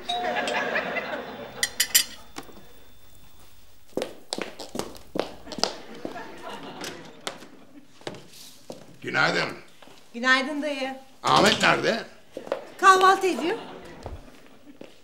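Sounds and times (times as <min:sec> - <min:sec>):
high heels on wooden floor: 0:03.3 - 0:06.2.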